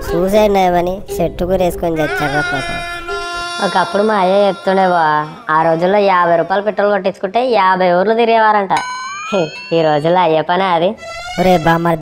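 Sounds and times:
music: 0.0s - 7.3s, 10.9s - 12.0s.

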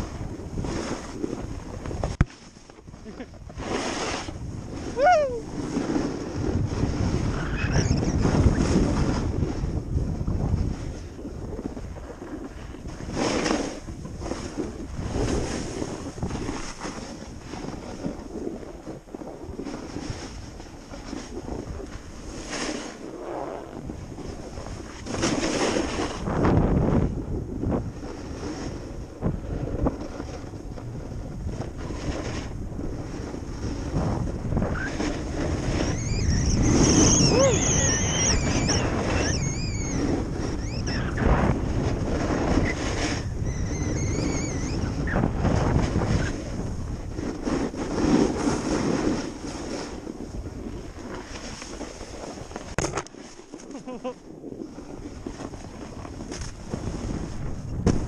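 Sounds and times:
skis sliding on packed snow: 0.0s - 7.4s, 8.3s - 27.0s, 27.6s - 36.0s, 41.2s - 43.3s, 44.9s - 57.7s
wind noise on microphone: 0.0s - 58.0s
wavering high-pitched sound: 36.0s - 40.0s.

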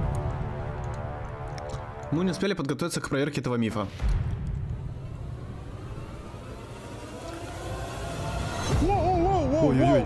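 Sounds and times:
low rumble: 3.9s - 9.7s
faint rising tone: 4.6s - 9.3s.

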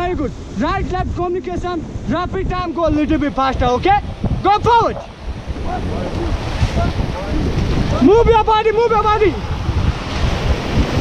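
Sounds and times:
rushing whitewater: 0.0s - 11.0s
wind buffeting microphone: 0.0s - 11.0s.

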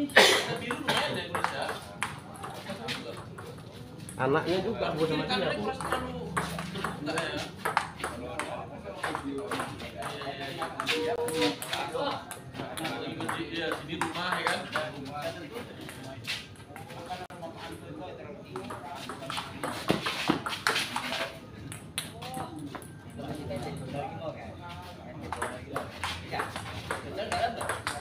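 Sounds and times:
people talking: 0.0s - 28.0s
ping pong ball clicking off paddles: 0.6s - 4.2s, 5.6s - 14.9s, 25.3s - 28.0s.

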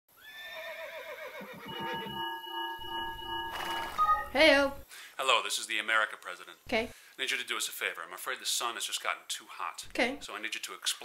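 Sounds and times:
horse whinnying: 0.2s - 2.2s
pulsing tone: 1.7s - 4.3s.

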